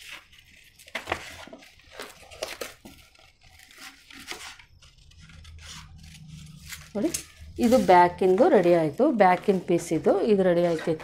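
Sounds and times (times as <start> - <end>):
paper rustling: 0.0 - 11.0
scissors snipping paper: 2.3 - 11.0.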